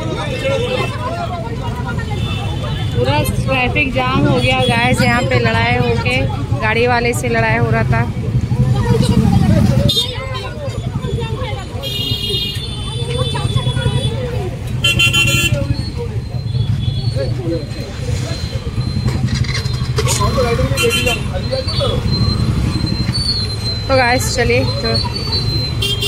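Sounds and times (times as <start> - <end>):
people's voices: 0.0 - 26.0
vehicle horns honking: 11.8 - 17.2, 20.0 - 22.1, 25.4 - 26.0.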